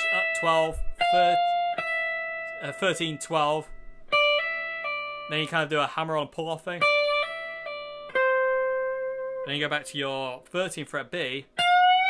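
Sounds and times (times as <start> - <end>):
electric guitar lead lick: 0.0 - 5.7, 6.8 - 10.4, 11.4 - 12.0.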